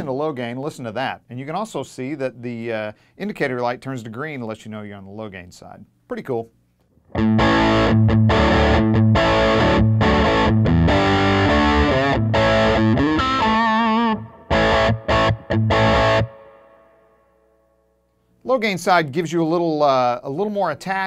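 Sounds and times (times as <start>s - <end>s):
distorted electric guitar riff: 7.0s - 17.2s.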